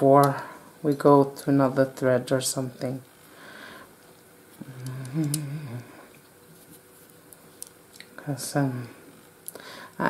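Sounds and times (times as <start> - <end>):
woman humming: 4.6 - 6.1.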